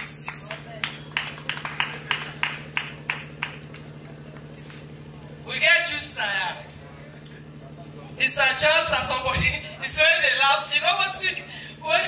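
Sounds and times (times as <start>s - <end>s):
rhythmic hand clapping: 0.0s - 4.5s
low electrical hum: 0.0s - 12.0s.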